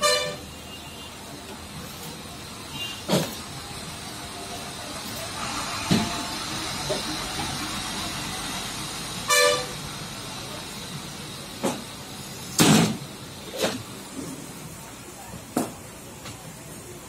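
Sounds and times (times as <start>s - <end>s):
vehicle horn honk: 0.0s - 1.2s, 2.7s - 3.1s, 9.3s - 9.8s
traffic background noise: 0.0s - 17.0s.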